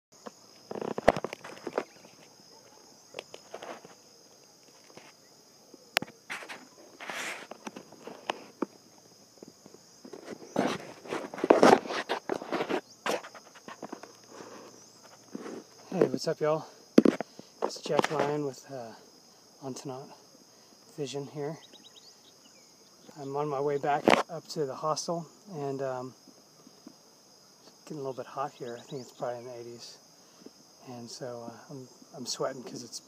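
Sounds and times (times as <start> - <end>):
insects buzzing: 0.1 - 33.0
footsteps on gravel: 0.3 - 2.4, 3.1 - 4.0, 6.1 - 16.2, 17.0 - 18.4.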